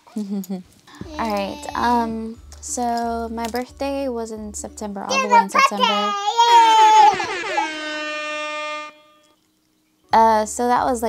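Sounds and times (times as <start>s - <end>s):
toddler holding a high note: 5.1s - 9.2s.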